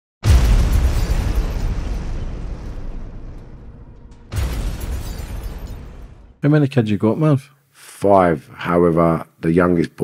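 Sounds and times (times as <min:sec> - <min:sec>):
deep rumble: 0:00.2 - 0:06.4
explosion boom: 0:00.2 - 0:06.4.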